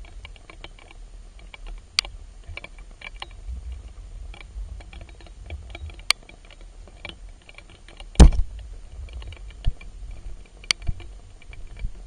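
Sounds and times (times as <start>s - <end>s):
low rumble of moving water: 0.0s - 12.0s
underwater clicks and crackles: 0.0s - 12.0s.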